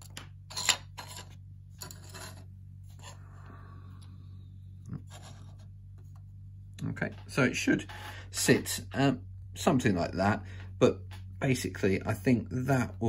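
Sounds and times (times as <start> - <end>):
steady low hum: 0.0 - 13.0
objects scraping on cutting mat: 5.0 - 6.2.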